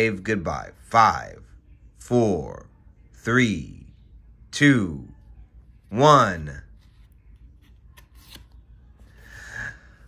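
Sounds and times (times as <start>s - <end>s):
cardboard pages turning: 6.7s - 9.2s.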